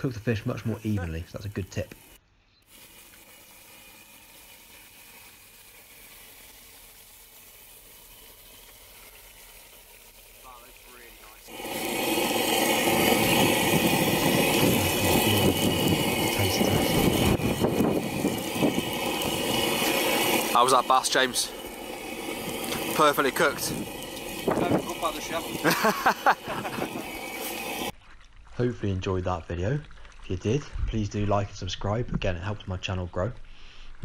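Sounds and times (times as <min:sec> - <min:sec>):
fish sizzling in a frying pan: 0:00.9 - 0:28.2.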